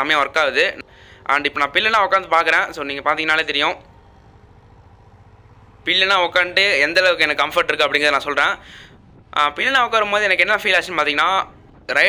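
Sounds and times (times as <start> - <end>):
man talking: 0.0 - 3.8, 5.9 - 12.0
faint low background hum: 0.0 - 12.0.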